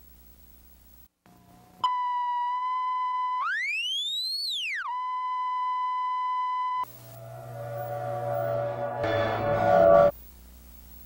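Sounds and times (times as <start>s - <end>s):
faint hum: 0.0s - 3.7s, 4.7s - 11.0s
steady test tone: 4.7s - 10.1s.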